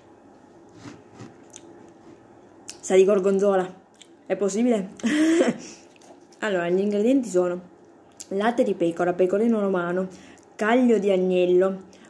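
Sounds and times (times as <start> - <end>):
person chewing pasta: 0.6 - 2.8, 5.6 - 6.4
wet mouth clicks: 1.4 - 1.7.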